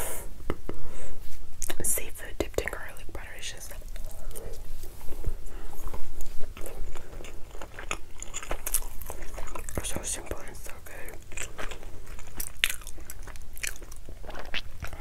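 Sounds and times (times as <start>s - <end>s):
chewing and wet mouth sounds: 3.7s - 15.0s.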